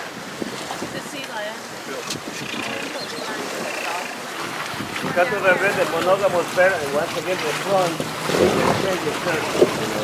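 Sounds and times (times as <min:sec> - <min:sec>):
wind noise on microphone: 0:00.0 - 0:07.1, 0:07.8 - 0:10.0
faint voices: 0:01.0 - 0:04.4, 0:05.0 - 0:10.0.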